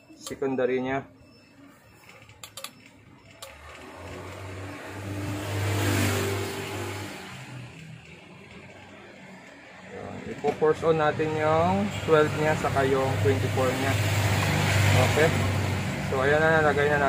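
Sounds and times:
vehicle engine passing by: 3.5 - 17.0.

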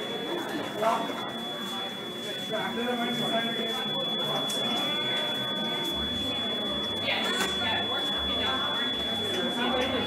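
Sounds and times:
faint voices: 0.0 - 10.0
game center background noise: 0.0 - 10.0
high-pitched electronic tone: 0.8 - 10.0.

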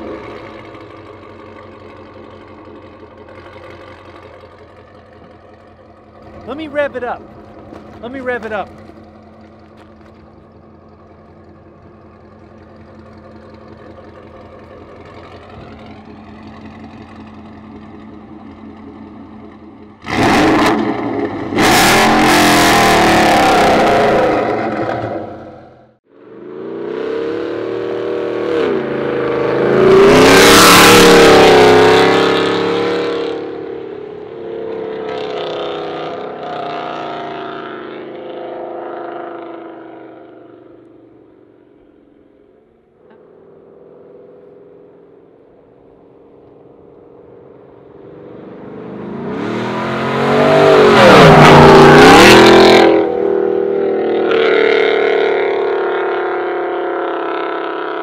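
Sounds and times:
truck accelerating past: 0.0 - 58.0
truck engine idling and revving: 0.0 - 58.0.

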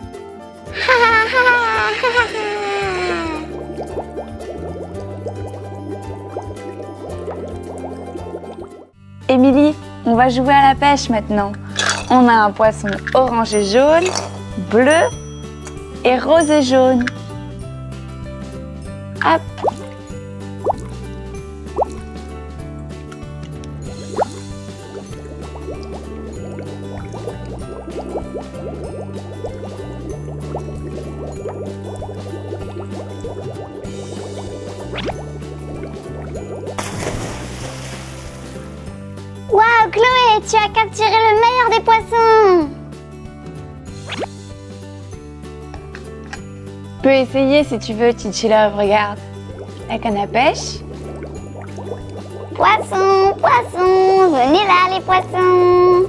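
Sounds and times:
water dripping into paddling pool: 3.4 - 8.9, 19.4 - 21.1, 21.7 - 22.1, 23.0 - 39.0, 49.1 - 53.8
background music with bass line: 16.9 - 56.0.

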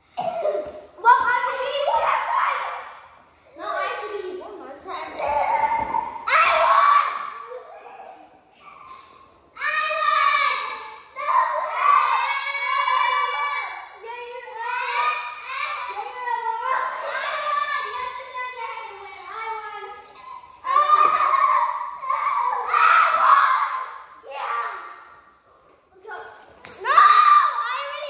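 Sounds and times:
children shouting and yelling: 0.2 - 25.3, 26.0 - 28.0.

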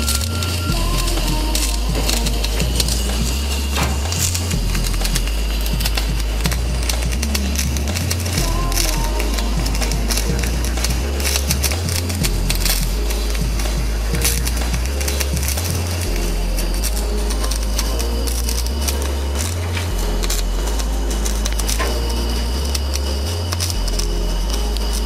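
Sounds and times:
background music with bass line: 0.0 - 25.0
electric arc welding crackle: 0.0 - 25.0.

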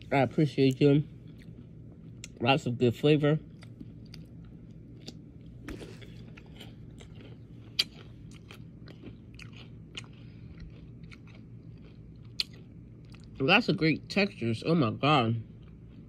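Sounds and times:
person chewing crunchy food: 0.0 - 13.4, 15.4 - 16.0.

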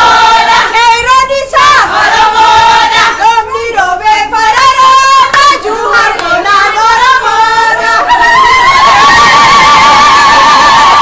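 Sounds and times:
children singing: 0.0 - 9.2.

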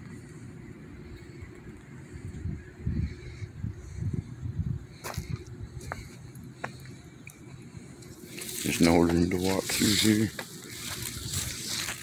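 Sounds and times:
light footsteps on pavement: 5.0 - 12.0.

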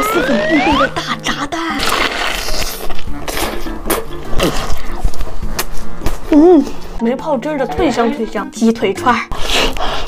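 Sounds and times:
background music: 0.0 - 10.0
crunching of fried egg: 1.7 - 5.7.

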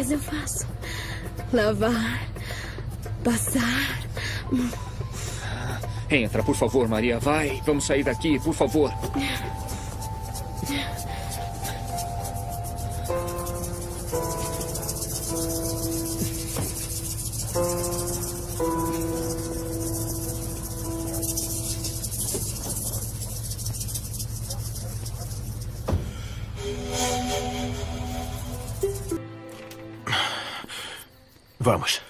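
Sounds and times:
slow melodic background music: 0.0 - 22.4, 26.6 - 31.5
steady low hum: 8.4 - 29.2.

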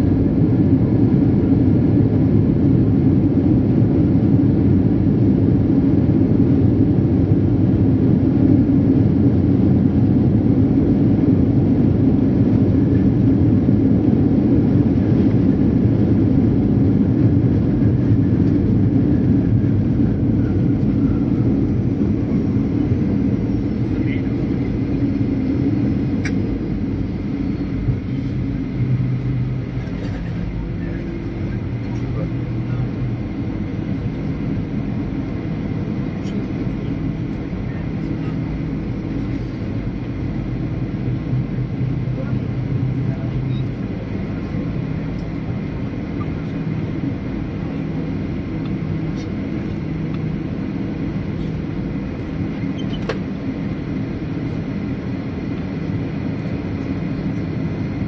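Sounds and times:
jet engines rumbling: 0.0 - 58.0.

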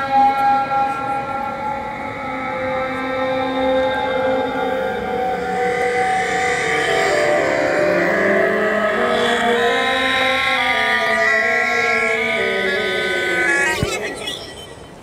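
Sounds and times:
electronic synth tones: 11.8 - 15.0.

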